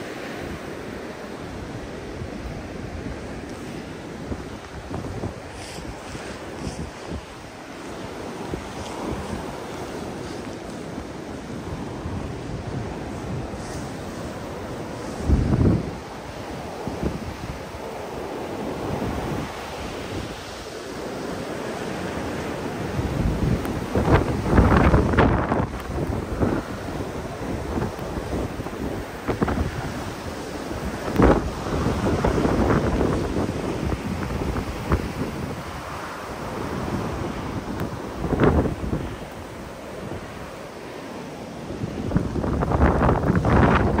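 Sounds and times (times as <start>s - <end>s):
wind blowing in gusts: 0.0s - 44.0s
wind buffeting microphone: 0.0s - 44.0s.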